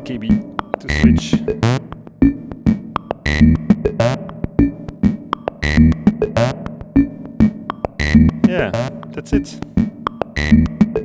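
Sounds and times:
synthesizer percussive filter hits: 0.4s - 9.1s, 9.7s - 11.0s
synthesizer clicks: 3.0s - 4.8s, 5.6s - 7.1s, 8.0s - 9.0s, 10.3s - 11.0s.

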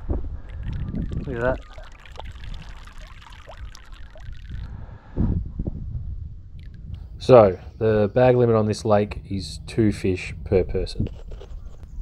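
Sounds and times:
water drips: 0.4s - 4.8s, 6.6s - 7.0s
water sloshing and trickling: 0.4s - 4.8s.

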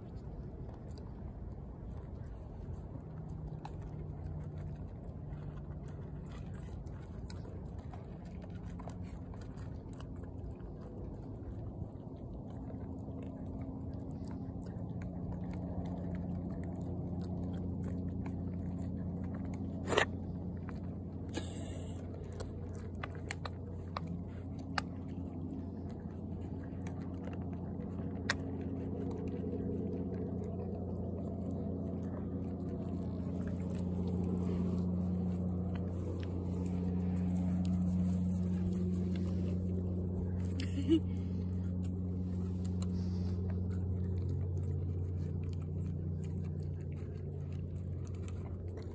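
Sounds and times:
goats crunching grain feed: 0.0s - 48.9s
steady low hum: 0.0s - 48.9s.

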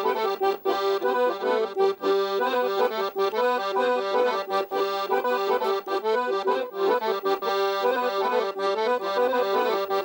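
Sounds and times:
accordion playing folk dance tune: 0.0s - 10.0s.

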